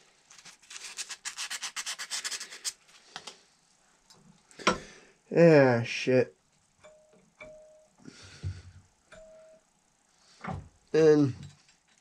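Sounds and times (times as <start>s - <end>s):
spring ringing tone: 6.8s - 8.0s, 9.1s - 9.7s.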